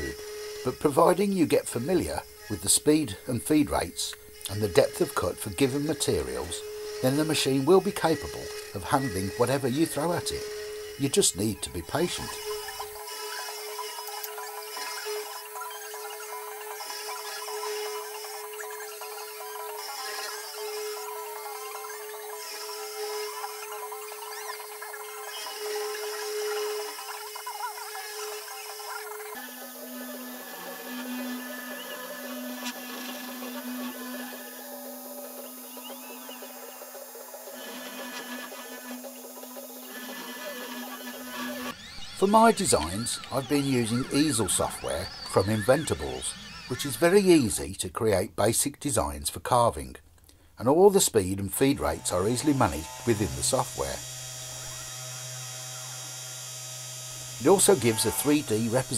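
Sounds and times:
end mill cutting fibreboard: 0.0s - 47.5s, 51.6s - 58.9s
router spindle motor whine: 0.0s - 47.6s, 51.6s - 58.9s.

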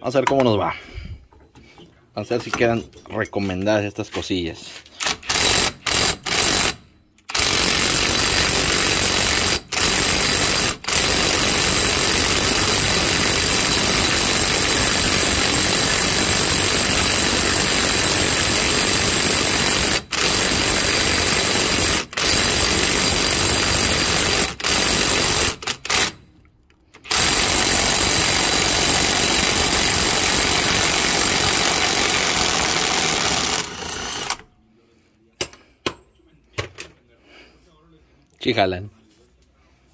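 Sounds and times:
impact wrench hammering: 27.0s - 34.4s.

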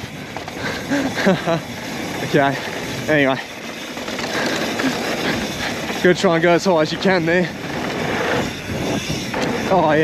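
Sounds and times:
bike tyre noise on dirt: 0.0s - 10.0s
wind rushing: 7.5s - 10.0s.

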